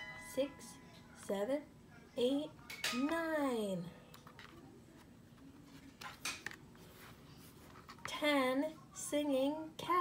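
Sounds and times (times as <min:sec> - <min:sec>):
woman reading aloud: 0:00.3 - 0:04.0, 0:08.0 - 0:10.0.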